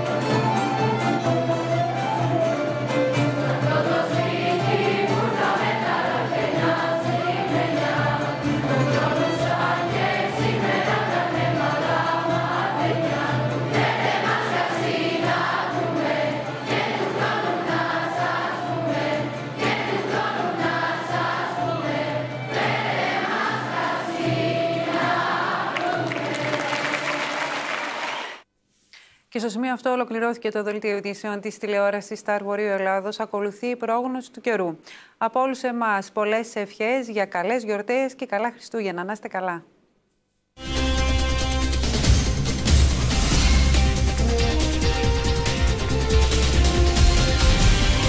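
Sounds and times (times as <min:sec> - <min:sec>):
children's choir singing: 0:03.3 - 0:28.4.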